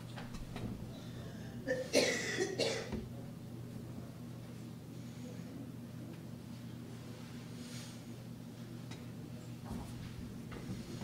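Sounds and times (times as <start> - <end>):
low steady room hum: 0.0 - 11.0
person coughing: 1.6 - 3.0.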